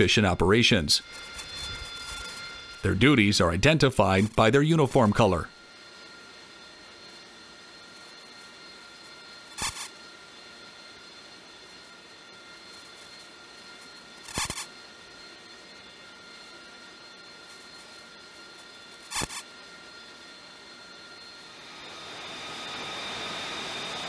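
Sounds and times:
jet engine running: 0.0 - 24.0.

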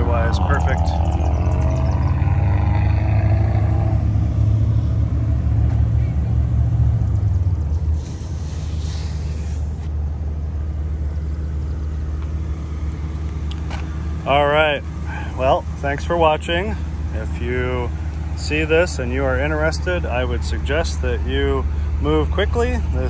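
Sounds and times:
low car rumble: 0.0 - 23.0.

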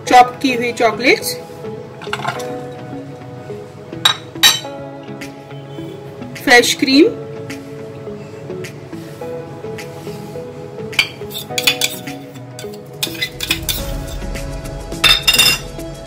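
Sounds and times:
background music: 0.0 - 16.0
metal spoon scraping a saucepan: 11.0 - 13.9.

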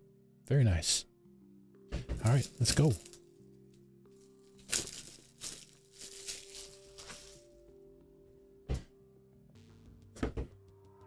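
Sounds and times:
quiet background music: 0.0 - 11.0
plastic wrap crinkling and tearing: 4.5 - 7.5.

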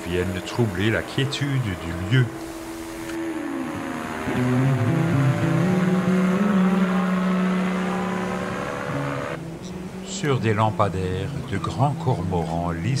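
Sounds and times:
aircraft propeller drone: 0.0 - 12.3.

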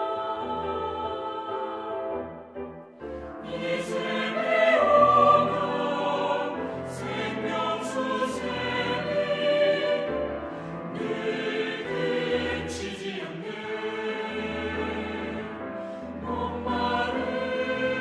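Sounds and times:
mixed choir singing: 0.0 - 18.0
piano accompaniment: 0.0 - 18.0.

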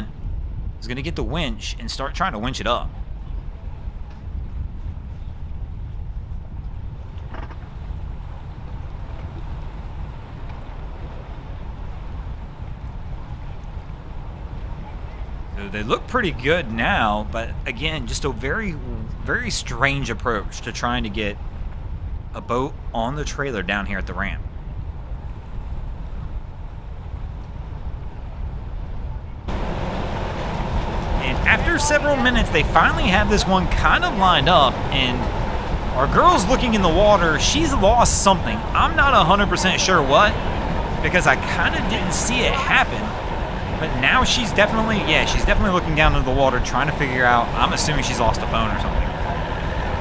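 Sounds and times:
faint water: 0.0 - 28.5, 29.4 - 50.0
wind buffeting microphone: 0.0 - 50.0.

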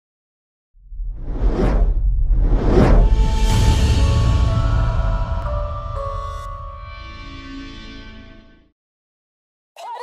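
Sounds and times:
deep rumble: 0.8 - 8.1
whoosh sound effect: 0.9 - 5.5.

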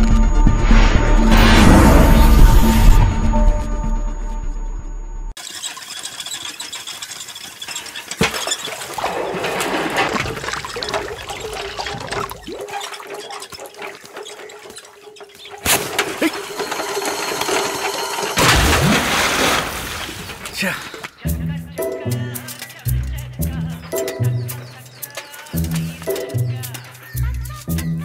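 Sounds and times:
pulley squeaking: 5.4 - 18.4, 22.3 - 28.0
water sloshing in a well: 5.4 - 21.0
loud splash: 8.5 - 13.0, 18.4 - 20.7.

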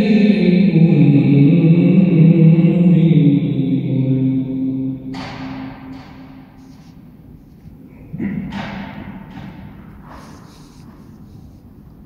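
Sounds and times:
man reciting melodically: 0.0 - 5.2.

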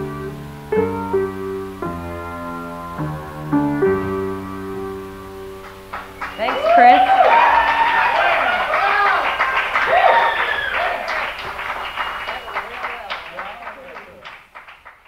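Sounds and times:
overlapping voices: 5.6 - 15.0.

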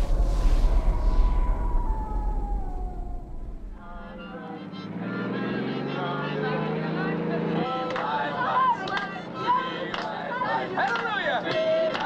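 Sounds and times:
heavy low rumble: 0.0 - 4.5
high tone sinking in pitch: 0.0 - 5.0.

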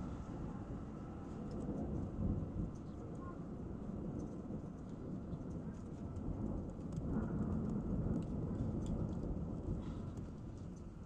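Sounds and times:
faint rain patter: 0.0 - 11.0
thunder rumbling: 0.0 - 11.0.

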